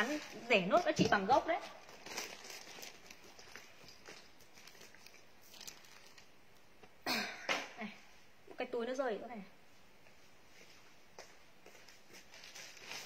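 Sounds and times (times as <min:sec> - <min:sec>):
clothes and plastic bags rustling: 0:00.0 - 0:06.8, 0:10.2 - 0:13.0
loud cough: 0:07.0 - 0:07.8.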